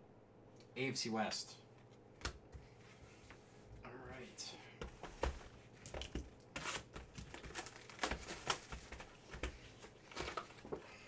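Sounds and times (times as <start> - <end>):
plastic wrap crinkling and tearing: 6.6 - 9.0.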